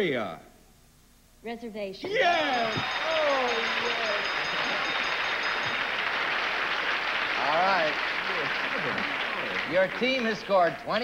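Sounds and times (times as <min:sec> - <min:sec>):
studio audience applauding: 0:02.1 - 0:11.0.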